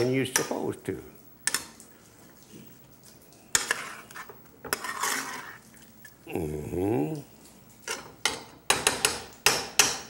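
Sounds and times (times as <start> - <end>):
soft stirring of vegetables: 0.0 - 10.0.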